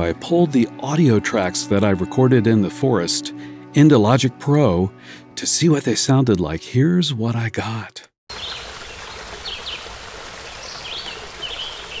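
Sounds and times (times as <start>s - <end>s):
running stream water: 8.3s - 12.0s
birds chirping: 8.4s - 12.0s.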